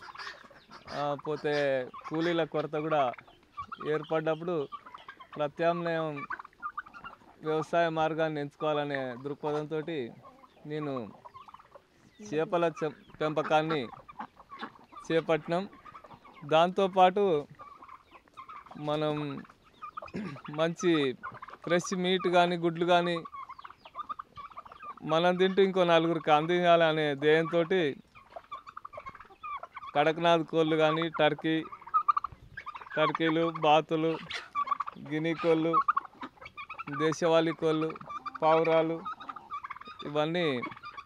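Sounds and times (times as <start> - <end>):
turkeys and chickens calling: 0.0 - 41.0
person speaking: 12.2 - 13.9.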